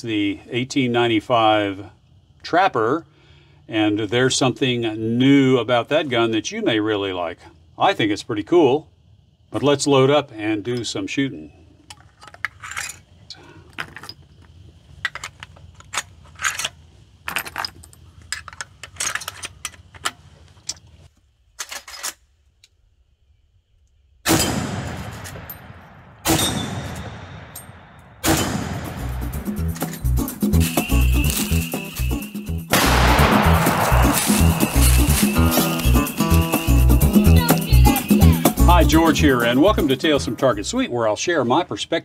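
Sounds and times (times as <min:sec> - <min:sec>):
rifle shots: 0:24.3 - 0:29.2, 0:32.7 - 0:34.9
music with steady beat: 0:28.8 - 0:40.0.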